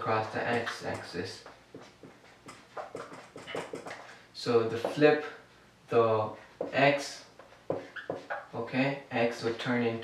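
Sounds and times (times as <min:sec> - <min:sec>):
marker squeaking on whiteboard: 0:00.4 - 0:05.3, 0:06.4 - 0:08.6.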